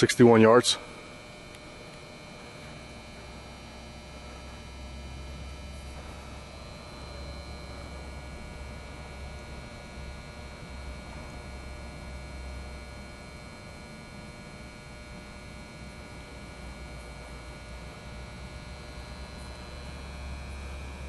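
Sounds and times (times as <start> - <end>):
faint high-pitched whining tones: 0.0 - 21.0
steady low hum: 0.0 - 21.0.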